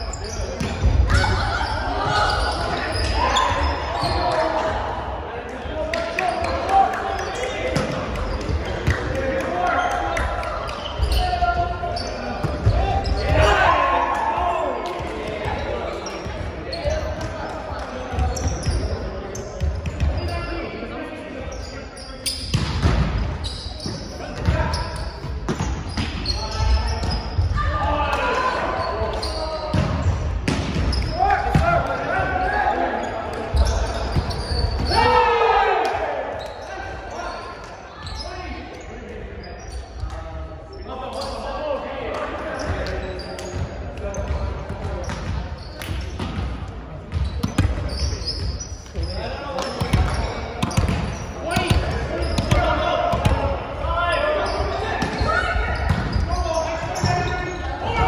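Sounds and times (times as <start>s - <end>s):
players calling out and talking: 0.0s - 58.0s.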